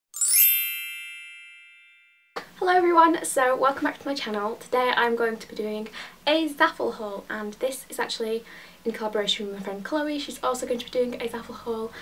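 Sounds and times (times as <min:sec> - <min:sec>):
bright chime with shimmer: 0:00.2 - 0:02.4.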